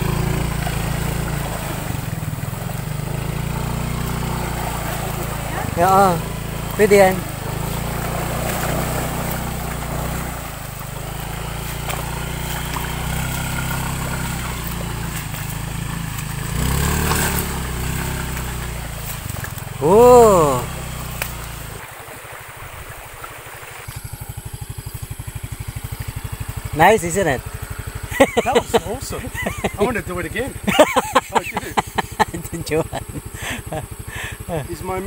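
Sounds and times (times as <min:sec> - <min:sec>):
scooter engine running: 0:00.0 - 0:35.0
water splashing: 0:00.0 - 0:35.0
person whooping: 0:19.8 - 0:20.7.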